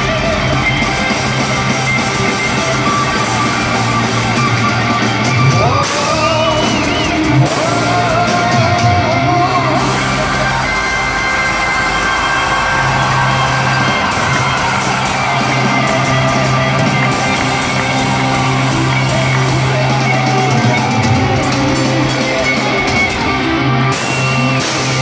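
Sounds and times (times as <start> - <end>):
bass guitar: 0.0 - 25.0
distorted electric guitars: 0.0 - 25.0
drums: 0.0 - 25.0
heavy metal band playing live: 0.0 - 25.0
person singing: 5.4 - 14.6.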